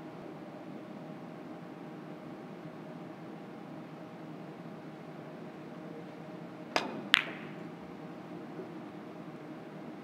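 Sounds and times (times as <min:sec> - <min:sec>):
cue striking ball click: 0:06.7 - 0:07.7
billiard balls colliding: 0:06.8 - 0:07.8.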